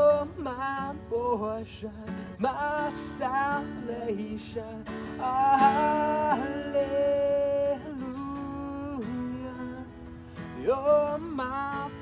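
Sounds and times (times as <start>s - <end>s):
man singing long notes: 0.0s - 9.9s
worship song on acoustic guitars: 0.0s - 12.0s.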